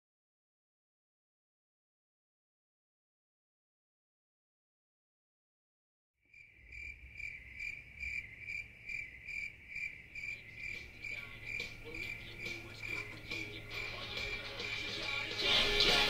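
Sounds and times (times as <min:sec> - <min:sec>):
crickets chirping: 0:06.3 - 0:15.2.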